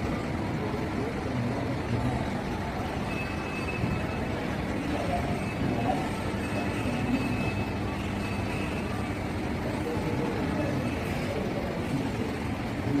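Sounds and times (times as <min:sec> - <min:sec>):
low rumble of hall ambience: 0:00.0 - 0:13.0.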